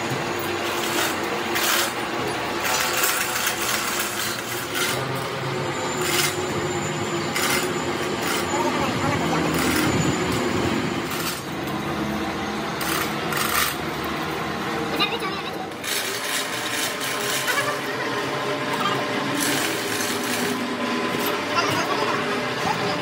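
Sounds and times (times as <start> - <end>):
voices talking: 7.8 - 11.0, 14.5 - 15.8, 17.1 - 19.8, 20.6 - 23.0.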